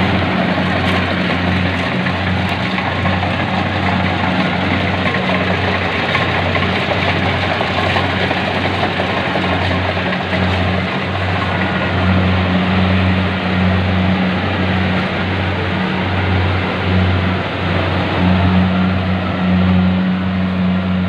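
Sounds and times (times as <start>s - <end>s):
harvester threshing clatter: 0.0s - 14.2s
diesel engine drone: 0.0s - 21.0s.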